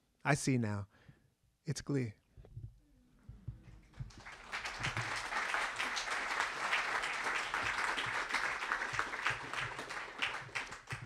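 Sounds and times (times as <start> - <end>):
audience applauding: 3.9 - 11.0.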